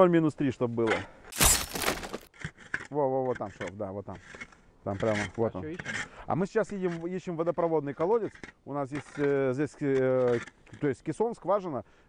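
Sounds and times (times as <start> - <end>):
pick breaking icy snow: 1.3 - 2.3.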